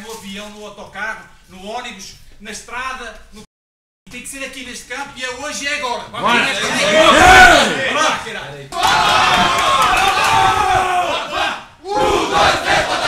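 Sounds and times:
men shouting together: 6.2s - 13.0s.

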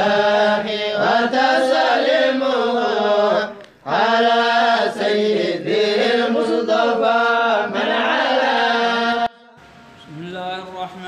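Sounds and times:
low held drone note: 9.3s - 10.9s.

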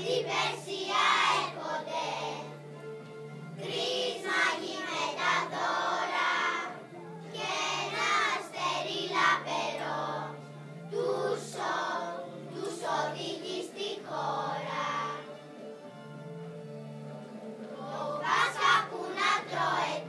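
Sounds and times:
children's choir singing: 0.0s - 2.6s, 3.6s - 15.4s, 17.6s - 20.0s
low steady accompaniment: 0.0s - 20.0s.

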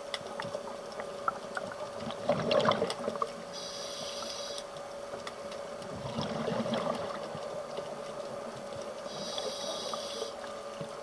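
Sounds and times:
faint steady hum: 0.0s - 11.0s
exhaled bubbles rumbling: 0.4s - 3.4s, 5.8s - 8.8s
regulator inhalation hiss: 3.6s - 4.6s, 9.1s - 10.4s.

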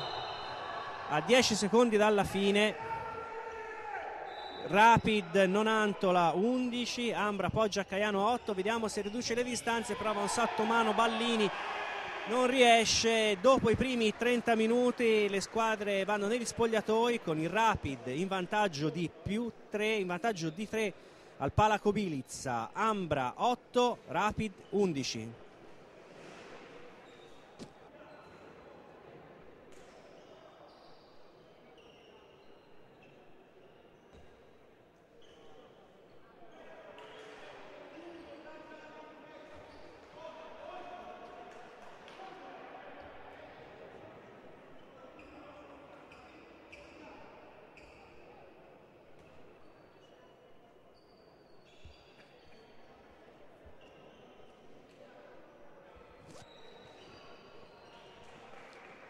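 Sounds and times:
echoing crowd chatter: 0.0s - 19.9s.

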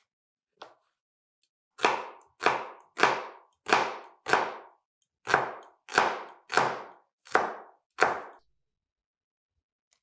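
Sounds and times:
knife chopping on cutting board: 1.8s - 8.4s.

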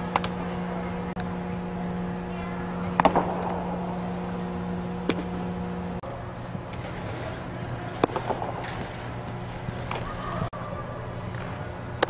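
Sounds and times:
low hum of indoor facility: 0.0s - 12.0s.

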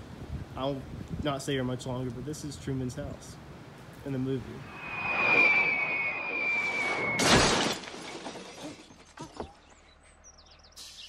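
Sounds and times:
falling object whistle: 4.6s - 7.8s
loud crash and shattering glass: 7.2s - 9.3s.

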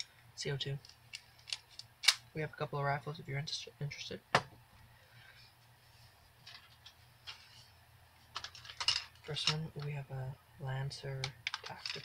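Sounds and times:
rustling: 5.1s - 9.5s.

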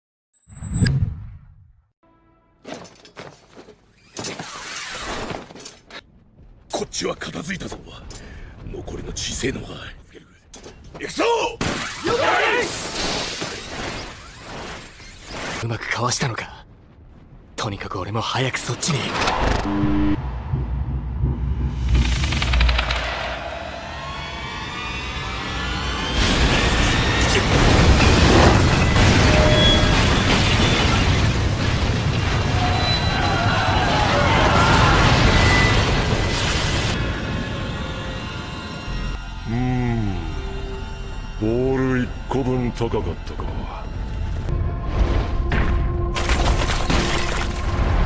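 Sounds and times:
rushing whoosh: 19.0s - 26.1s
sharp clattering hits: 19.1s - 23.6s
rising whine: 19.2s - 27.2s
steady low rumble: 19.3s - 24.4s
deep boom with high ring: 19.7s - 22.8s.

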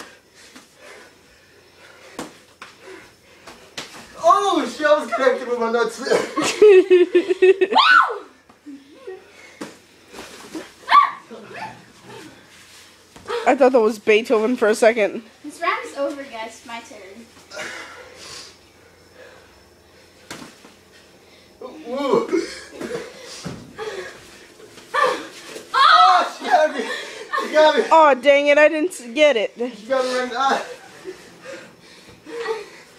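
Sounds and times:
person crying out: 7.6s - 8.3s, 24.9s - 27.9s
person bark-like shout: 10.9s - 11.8s
person exclaiming: 25.8s - 27.9s.

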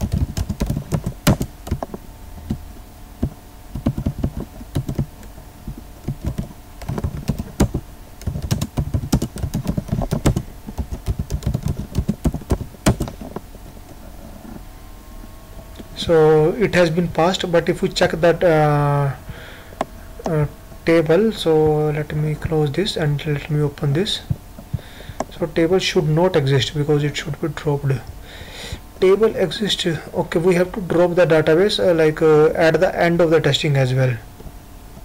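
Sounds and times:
computer keyboard typing: 0.0s - 2.6s, 3.7s - 5.2s, 6.0s - 13.3s.

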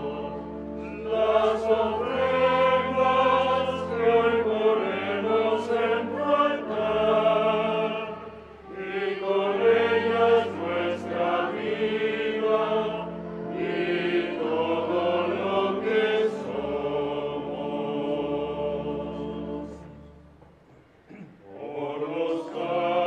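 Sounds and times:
choir singing a slow hymn: 0.0s - 20.3s, 21.1s - 23.0s.

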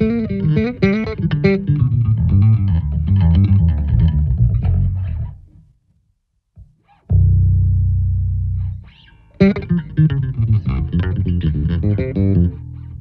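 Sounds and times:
electric bass notes: 0.0s - 5.5s, 7.1s - 13.0s.

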